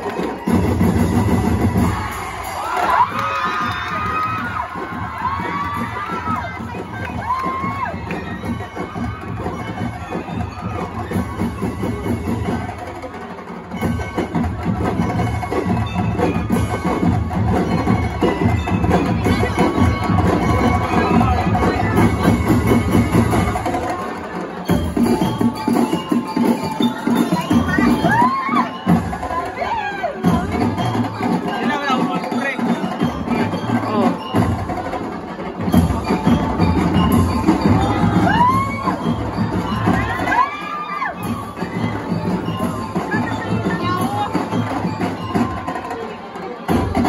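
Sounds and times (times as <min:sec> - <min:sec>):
drums fast beat: 0:00.0 - 0:47.0
voices calling out: 0:00.0 - 0:47.0
bell lyres ringing: 0:00.4 - 0:47.0.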